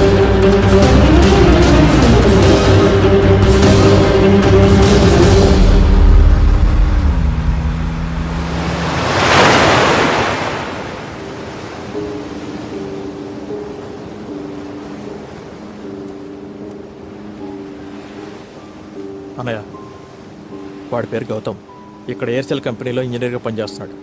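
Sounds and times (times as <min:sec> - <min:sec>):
rushing surf: 0:00.0 - 0:21.8
sea waves washing: 0:00.0 - 0:23.6.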